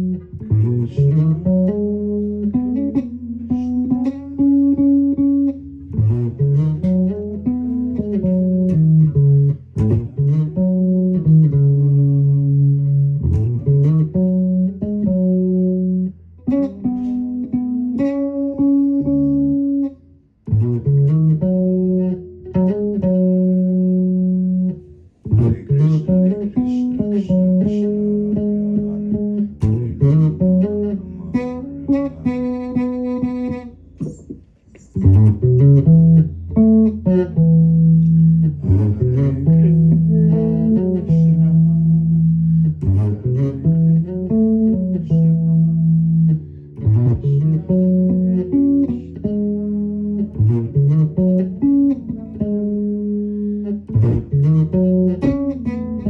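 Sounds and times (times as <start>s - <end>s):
electric bass guitar melody: 0.0s - 56.0s.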